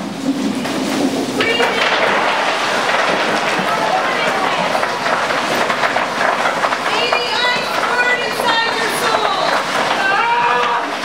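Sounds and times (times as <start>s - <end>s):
loose material rattling out of boxes: 0.2s - 11.0s
background voices: 1.2s - 11.0s.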